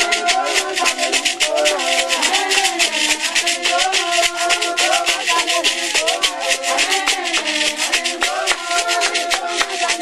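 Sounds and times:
rattles shaken: 0:00.0 - 0:10.0
voices singing: 0:00.0 - 0:10.0.

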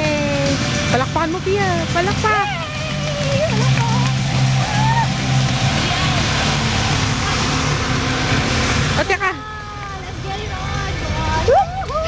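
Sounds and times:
people's voices: 0:00.0 - 0:08.2, 0:08.9 - 0:12.0
car engine humming: 0:00.0 - 0:12.0.

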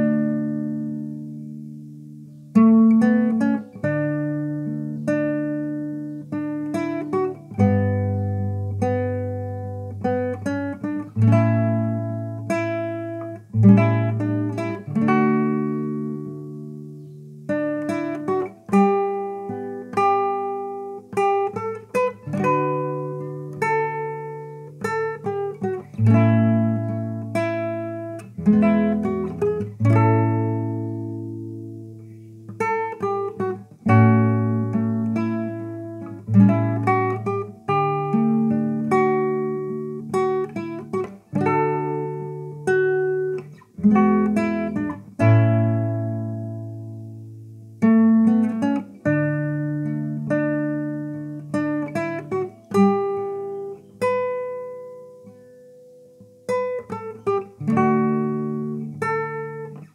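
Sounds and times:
fingerpicked classical guitar: 0:00.0 - 0:59.9.

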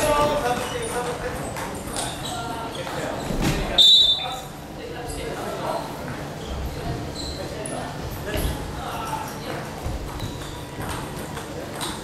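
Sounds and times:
murmur of gym hall: 0:00.0 - 0:12.0.

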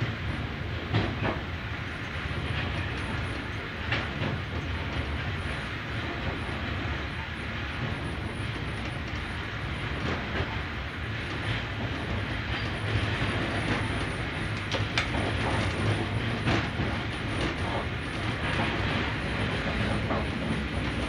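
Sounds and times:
train wheels rumbling on rails: 0:00.0 - 0:21.0
wheels clacking over rail joints: 0:00.4 - 0:21.0.

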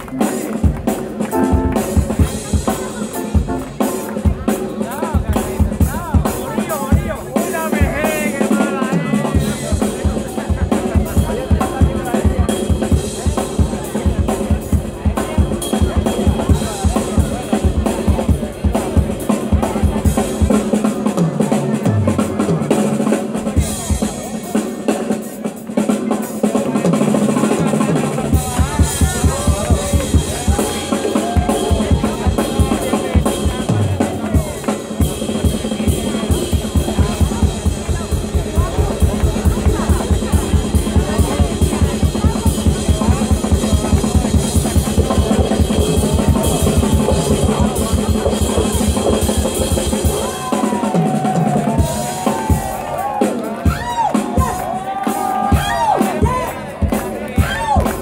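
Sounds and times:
drum kit solo: 0:00.0 - 0:58.0
bass drum strokes: 0:00.8 - 0:07.3.

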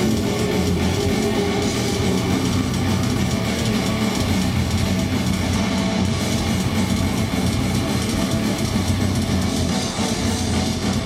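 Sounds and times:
bass guitar: 0:00.0 - 0:11.0
distorted electric guitars: 0:00.0 - 0:11.0
fast dense drumming: 0:00.0 - 0:11.0.

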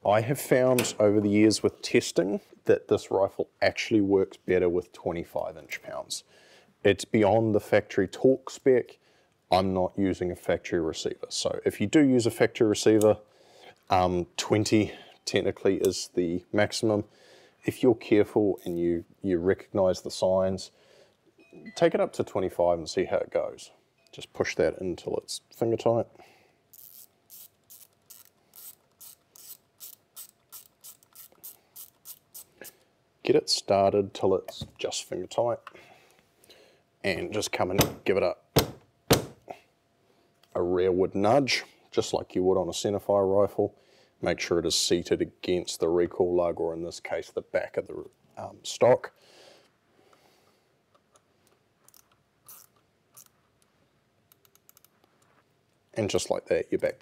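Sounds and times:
ratcheting hand driver clicking: 0:26.8 - 0:32.5, 0:51.0 - 0:53.3.

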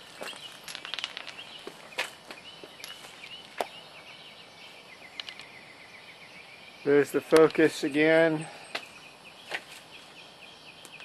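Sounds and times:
faint high wavering chirps: 0:00.0 - 0:11.0.

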